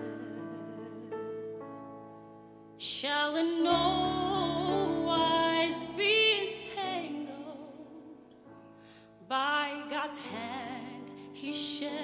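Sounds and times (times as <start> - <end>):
woman singing with vibrato: 0.0 - 1.3, 2.8 - 8.2, 9.3 - 12.0
gospel choir holding chords: 0.0 - 1.8, 2.9 - 8.2.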